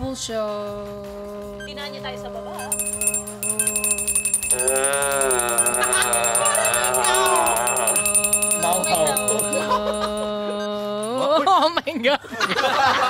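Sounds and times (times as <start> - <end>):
fast faint ticking: 2.6 - 11.2
second wavering sung line: 2.6 - 11.2.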